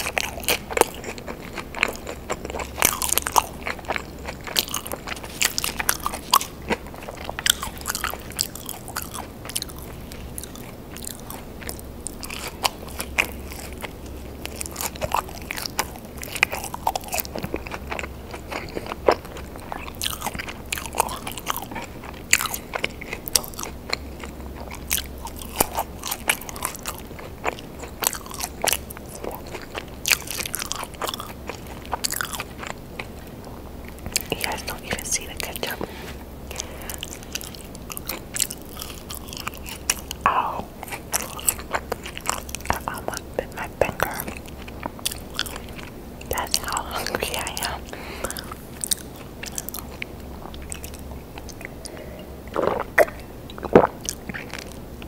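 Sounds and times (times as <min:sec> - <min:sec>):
chewing crunchy fries: 0:00.0 - 0:55.0
faint low hum: 0:00.0 - 0:55.0.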